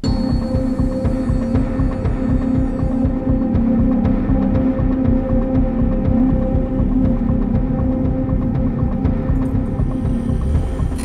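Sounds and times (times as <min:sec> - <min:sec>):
throbbing electronic drone: 0:00.0 - 0:11.0.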